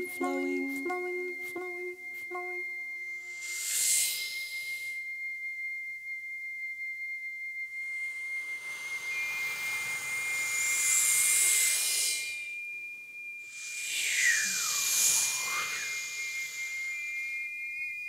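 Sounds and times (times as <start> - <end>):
short sung notes: 0.0 - 2.8
voices holding high pure tone: 0.0 - 5.1, 7.8 - 12.7, 13.4 - 18.0
breathy hissing shh sounds: 3.2 - 5.0, 8.4 - 12.5, 13.4 - 17.4.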